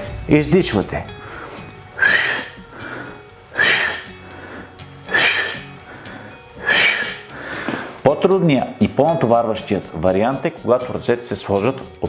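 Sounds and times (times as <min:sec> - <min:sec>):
background music: 0:00.0 - 0:12.0
man exhaling forcefully: 0:01.2 - 0:08.0
soft inhales: 0:01.2 - 0:08.0.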